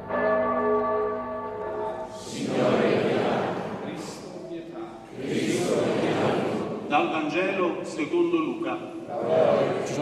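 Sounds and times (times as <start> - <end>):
church bell ringing: 0.0 - 3.8.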